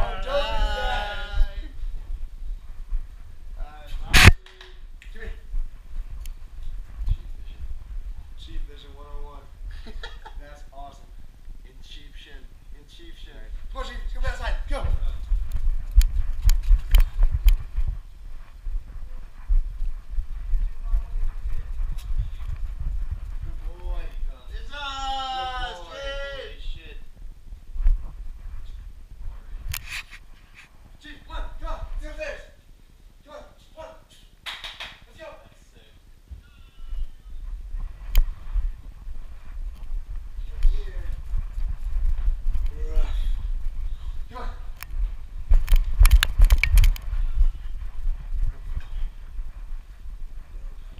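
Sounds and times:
camera bumping and rubbing: 0:04.1 - 0:04.7, 0:15.4 - 0:18.0, 0:29.6 - 0:30.7, 0:44.8 - 0:49.0
camera handling rumble: 0:44.8 - 0:47.4.

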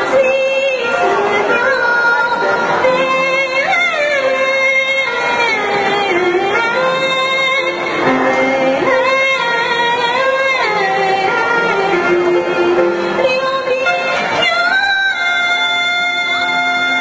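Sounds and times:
instrumental accompaniment: 0:00.0 - 0:17.0
woman singing: 0:00.0 - 0:17.0.

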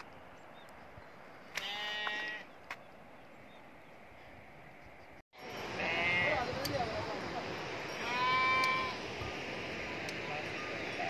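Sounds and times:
sheep bleating: 0:01.6 - 0:02.4, 0:05.7 - 0:06.4, 0:08.0 - 0:09.0.

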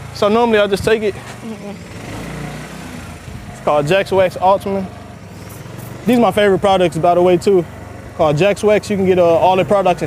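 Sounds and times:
engine idling drone: 0:00.0 - 0:10.0.

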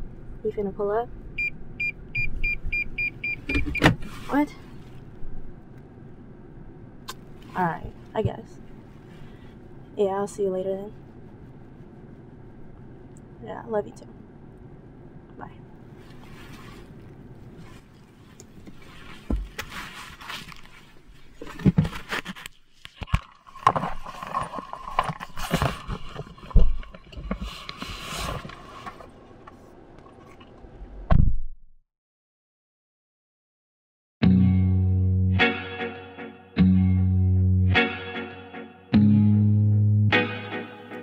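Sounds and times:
nylon jacket rustling: 0:16.0 - 0:22.8.

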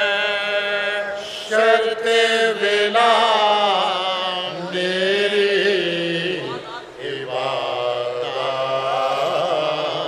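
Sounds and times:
male voices chanting an elegy: 0:00.0 - 0:10.0.

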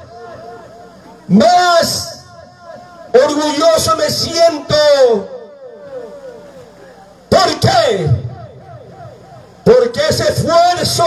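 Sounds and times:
man speaking over pa system: 0:00.0 - 0:11.0.

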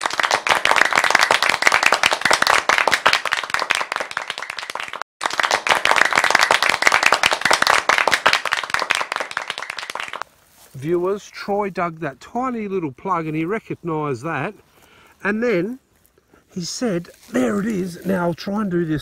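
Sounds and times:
dense steady clapping: 0:00.0 - 0:10.2.

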